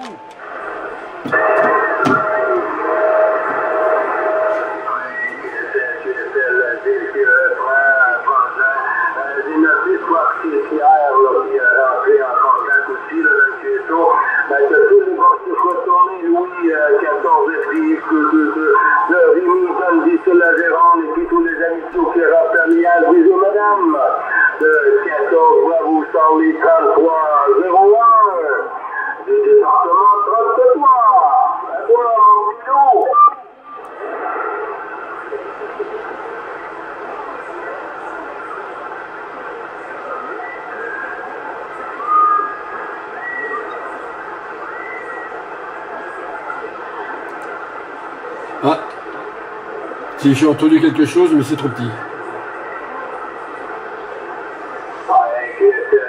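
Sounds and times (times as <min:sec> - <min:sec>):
radio voice speaking: 0:00.0 - 0:00.4, 0:04.5 - 0:33.2, 0:50.2 - 0:52.2
radio hiss: 0:00.0 - 0:31.8, 0:33.6 - 0:56.0.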